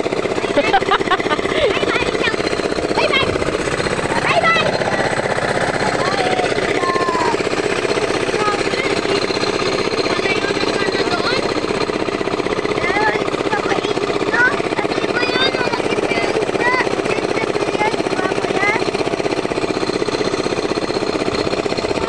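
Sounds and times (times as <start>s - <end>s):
small engine chugging: 0.0s - 22.0s
people calling out: 0.4s - 7.5s.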